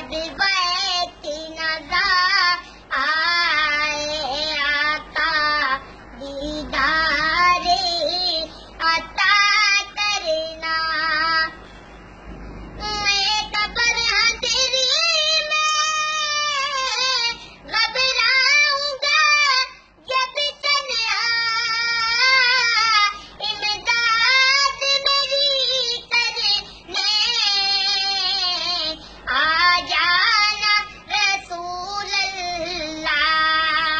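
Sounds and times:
boy singing devotional song: 0.0s - 11.6s, 12.8s - 33.9s.

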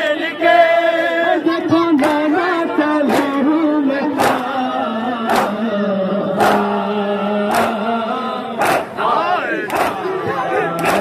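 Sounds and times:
crowd beating chests in unison: 0.0s - 11.0s
men chanting together: 0.0s - 11.0s.

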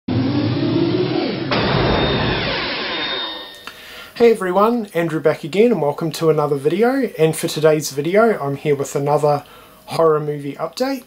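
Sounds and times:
noisy whoosh: 0.1s - 3.7s
electronic pitched drone: 0.1s - 4.0s.

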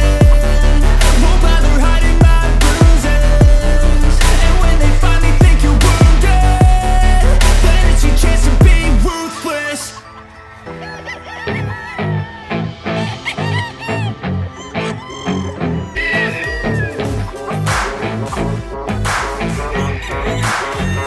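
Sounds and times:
electronic backing track: 0.0s - 10.8s, 11.4s - 21.0s
rooster calls: 9.1s - 17.6s, 19.6s - 21.0s.

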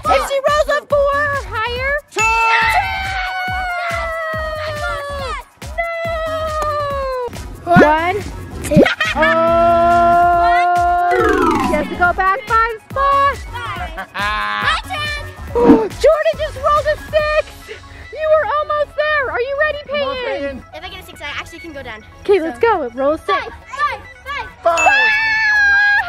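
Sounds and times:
bouncy repeating tune: 11.1s - 12.5s
held chord with falling slide: 11.1s - 12.6s.

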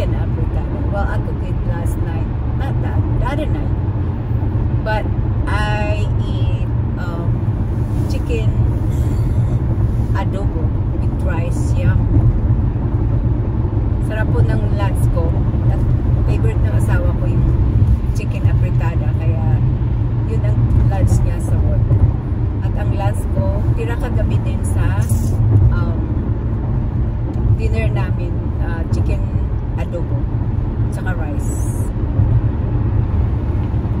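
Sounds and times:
car cabin road rumble: 0.0s - 34.0s.

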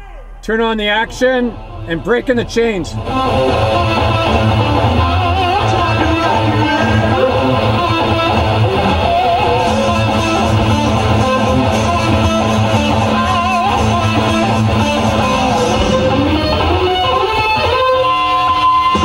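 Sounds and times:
bass line: 0.0s - 17.8s
electric guitar lead: 0.2s - 19.0s.

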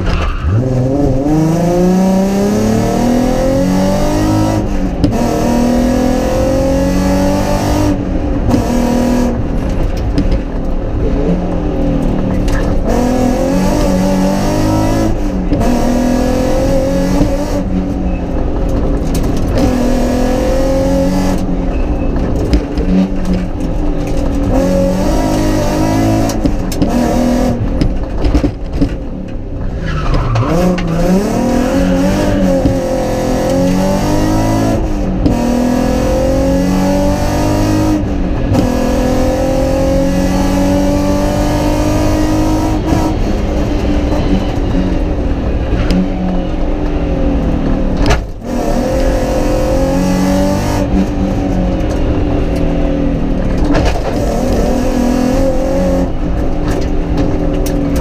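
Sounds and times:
rally car engine accelerating: 0.0s - 58.0s.

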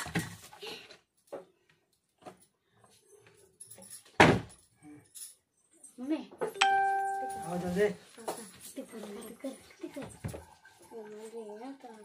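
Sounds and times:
steady ringing tone: 6.6s - 7.7s.

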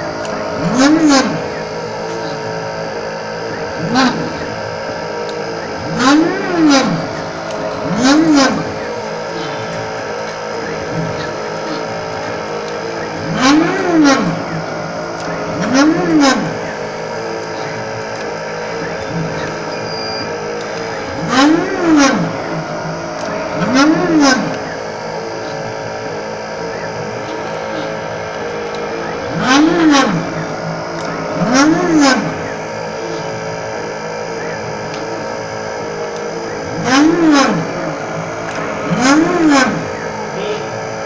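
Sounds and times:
steady machine hum: 0.0s - 41.0s
stepper motors whining: 0.0s - 41.0s.

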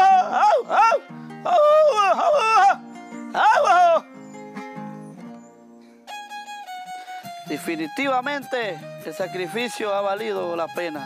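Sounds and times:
man singing long wavering vowels: 0.0s - 2.8s
music with held notes: 2.8s - 3.4s, 4.0s - 11.0s
plucked strings: 4.0s - 11.0s.

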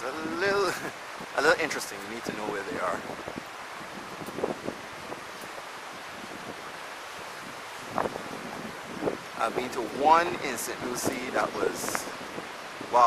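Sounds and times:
wind rushing on microphone: 0.0s - 13.0s.

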